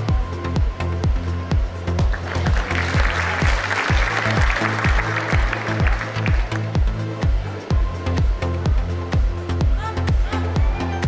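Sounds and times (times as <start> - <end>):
electronic dance music: 0.0 - 11.0
audience applause: 2.0 - 6.8.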